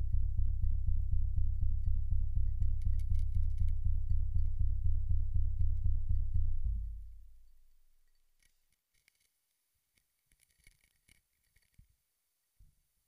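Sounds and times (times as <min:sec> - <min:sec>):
deep rhythmic throbbing: 0:00.0 - 0:07.4
faint ticks and scratches: 0:08.0 - 0:12.0.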